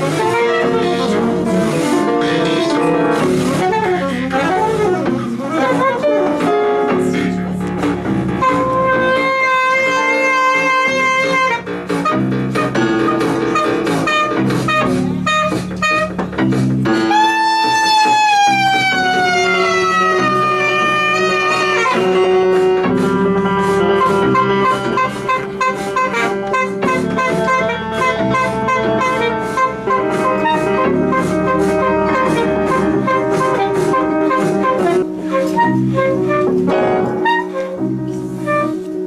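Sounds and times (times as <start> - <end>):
alto saxophone holding notes: 0.0 - 39.0
prepared piano: 0.0 - 39.0.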